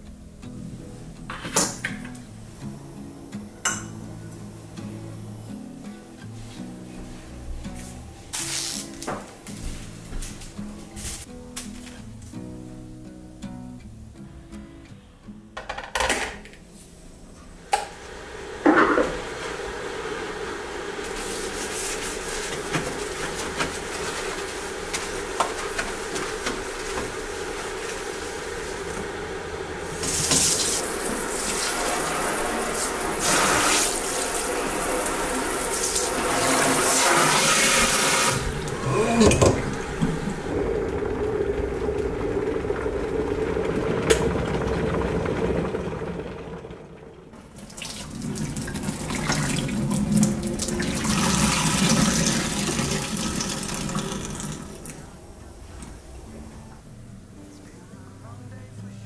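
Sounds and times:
water splashing into steel sink: 43.5 - 55.0.

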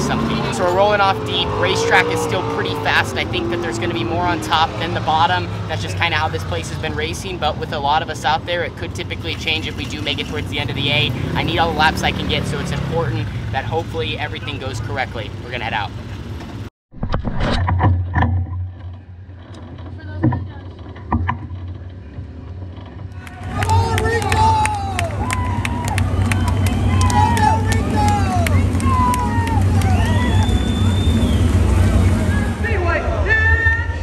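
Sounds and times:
sprint car engines rumbling: 0.0 - 16.7, 20.0 - 34.0.

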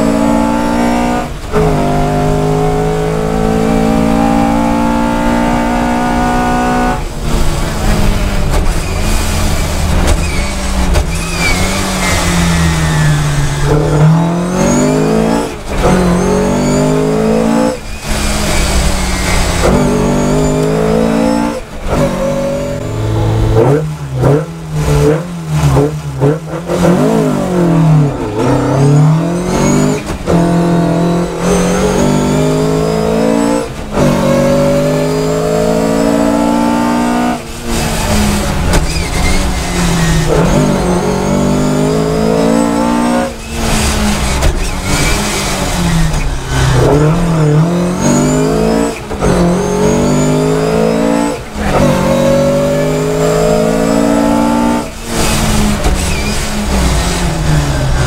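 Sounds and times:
rally car engine revving: 0.0 - 58.0.

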